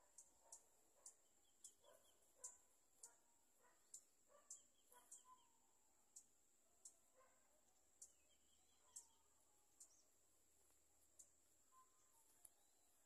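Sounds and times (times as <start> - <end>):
bird chirps: 0.0 - 10.3, 11.0 - 13.0
light ticks: 10.6 - 11.4.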